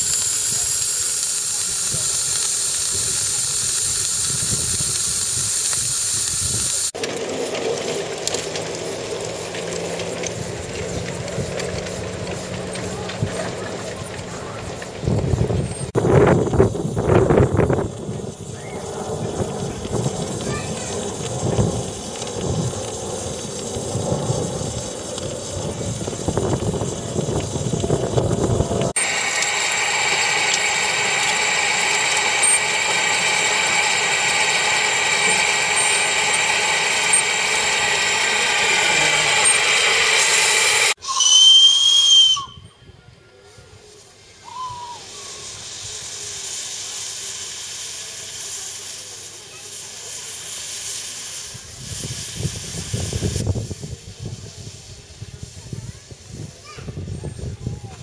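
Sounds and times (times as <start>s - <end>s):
firebox fire rumbling: 0.0s - 42.5s, 43.8s - 58.0s
steam hissing: 0.0s - 42.6s, 43.3s - 58.0s
low rumble: 7.6s - 40.2s
steam whistle toot: 29.0s - 42.9s, 44.4s - 46.9s.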